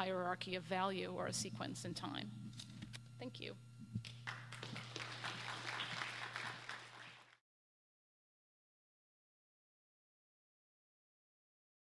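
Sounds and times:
low electrical hum: 0.0s - 7.4s
audience applauding: 4.1s - 7.4s.

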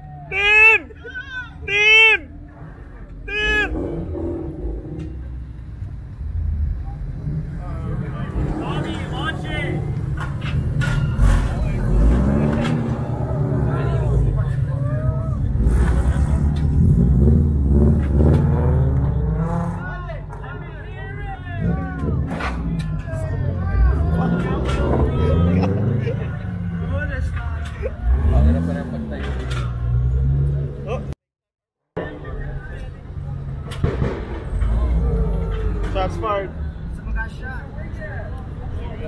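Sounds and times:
car engines and exhausts rumbling: 0.0s - 31.2s, 31.9s - 39.0s
crowd voices: 0.0s - 31.2s, 32.0s - 39.0s.

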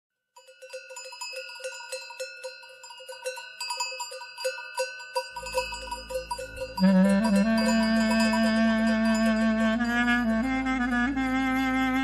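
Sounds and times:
flock bells clanking: 0.4s - 10.9s
low steady drone: 5.5s - 12.0s.

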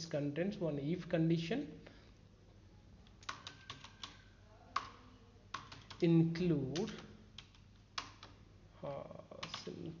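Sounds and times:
computer keyboard typing: 3.0s - 8.4s, 9.3s - 10.0s.

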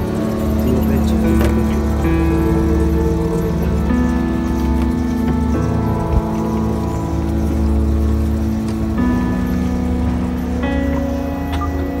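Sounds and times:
background music of held chords: 0.0s - 12.0s
steady low rumble: 0.0s - 12.0s.

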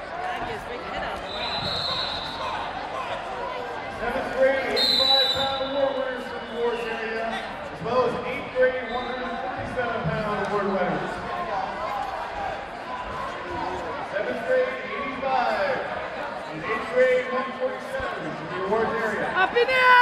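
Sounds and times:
voices echoing in gym: 0.0s - 20.0s
referee's whistle blasts: 1.3s - 2.6s, 4.6s - 7.0s.

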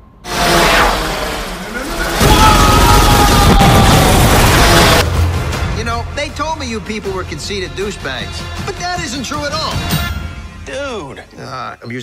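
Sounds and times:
sci-fi whoosh with gliding tones: 0.2s - 2.2s.

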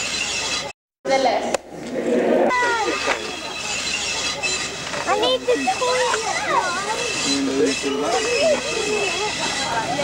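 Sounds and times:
people talking: 1.1s - 1.6s, 2.5s - 10.0s.

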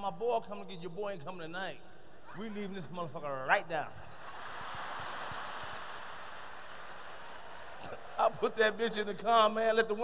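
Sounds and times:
audience applauding: 4.2s - 8.4s.

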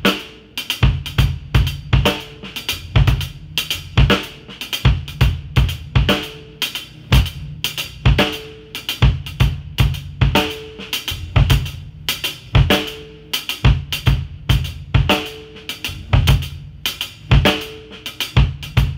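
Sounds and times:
hi-hat double strokes: 0.0s - 18.9s
bass drum kicks: 0.8s - 6.3s, 7.1s - 8.4s, 9.0s - 13.0s, 13.6s - 17.6s.

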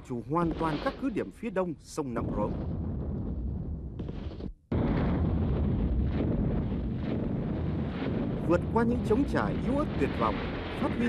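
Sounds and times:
low rumbling roar: 4.8s - 11.0s.

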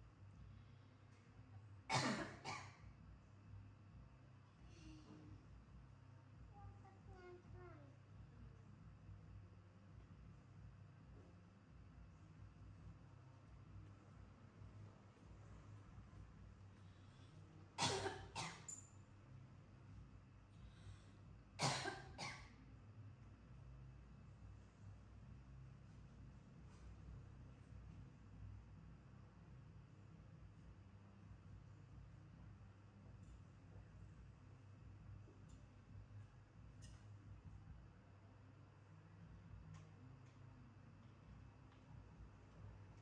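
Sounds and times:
woman coughing: 1.9s - 2.8s, 17.8s - 18.7s, 21.6s - 22.5s.

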